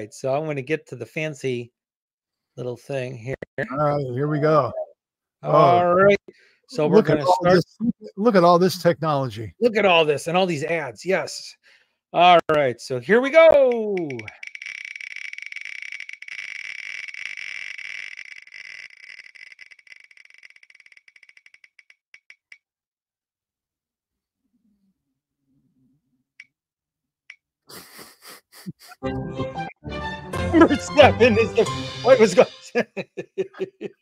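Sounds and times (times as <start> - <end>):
number picker wheel ticking: 13.6 - 14.6
spinning wheel ticking: 13.6 - 22.6
short musical jingle: 29.1 - 32.8.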